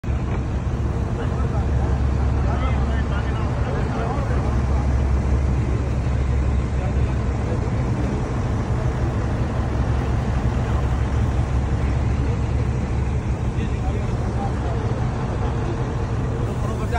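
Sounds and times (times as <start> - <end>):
heavy engine humming: 0.0 - 16.9.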